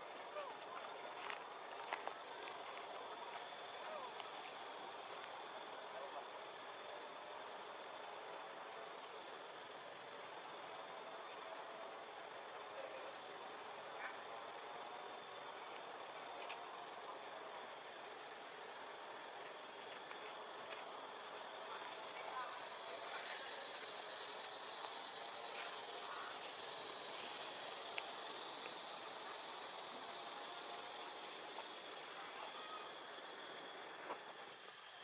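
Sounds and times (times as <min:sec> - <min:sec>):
insects droning: 0:00.0 - 0:35.0.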